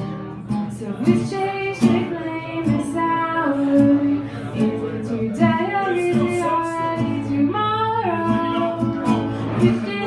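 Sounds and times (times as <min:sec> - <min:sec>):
strummed acoustic guitar: 0:00.0 - 0:10.0
person singing: 0:00.8 - 0:10.0.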